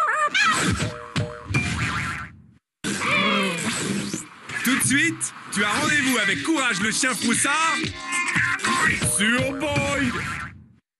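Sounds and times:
background music: 0:04.6 - 0:10.6
cartoon jingle: 0:08.1 - 0:10.4.

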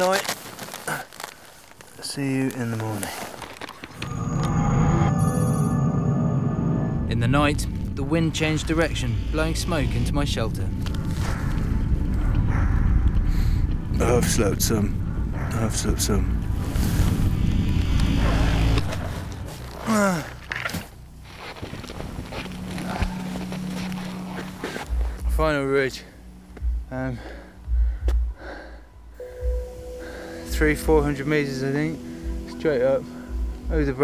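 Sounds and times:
man breathing hard: 0:27.2 - 0:30.5
held music chord: 0:29.0 - 0:34.0.

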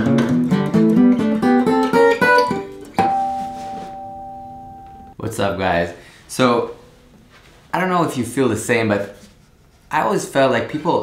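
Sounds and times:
guitar chord ringing: 0:00.0 - 0:05.2.

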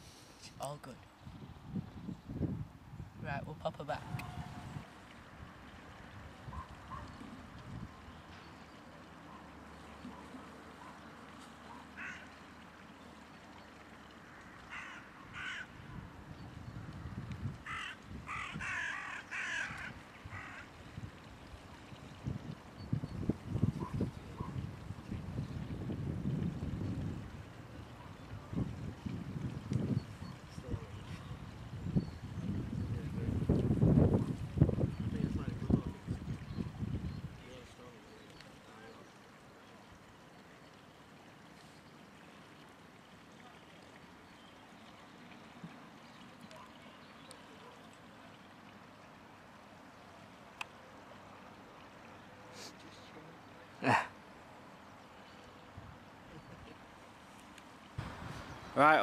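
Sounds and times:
wind gusts on microphone: 0:00.4 - 0:08.1, 0:15.8 - 0:18.8, 0:20.3 - 0:37.6, 0:58.0 - 0:59.0
bird harsh calls: 0:11.7 - 0:12.3, 0:14.7 - 0:15.7, 0:17.7 - 0:20.7.

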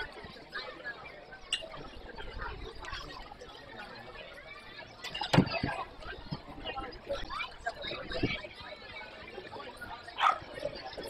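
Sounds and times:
distant indistinct chatter: 0:00.0 - 0:11.0.

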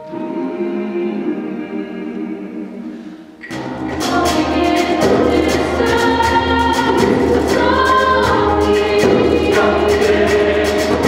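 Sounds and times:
mixed choir singing: 0:00.0 - 0:11.0.

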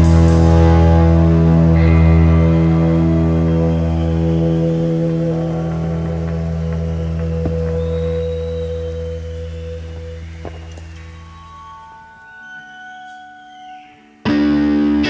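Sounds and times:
electric guitars sustained chord: 0:00.0 - 0:15.0
faint clicks: 0:10.4 - 0:11.2.

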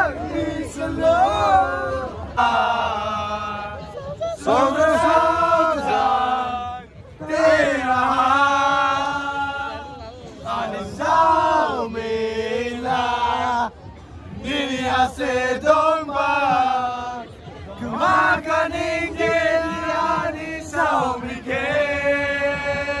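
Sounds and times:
young men chanting in chorus: 0:00.0 - 0:13.7, 0:14.3 - 0:23.0.

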